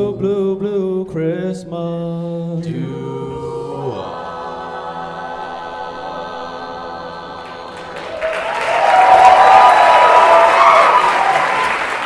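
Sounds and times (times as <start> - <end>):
vocal group singing chord: 0.0 - 9.7
audience applause and cheering: 7.7 - 12.0.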